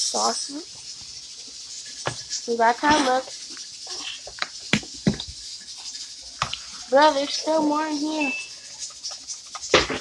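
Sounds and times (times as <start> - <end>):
faint kitchen room noise: 0.0 - 10.0.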